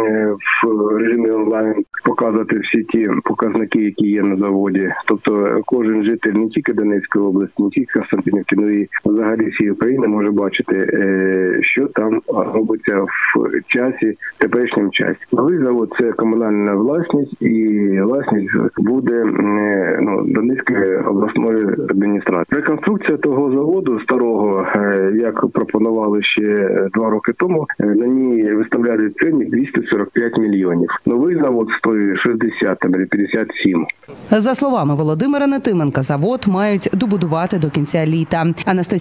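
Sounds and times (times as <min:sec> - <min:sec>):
man talking over a telephone: 0:00.0 - 0:34.3.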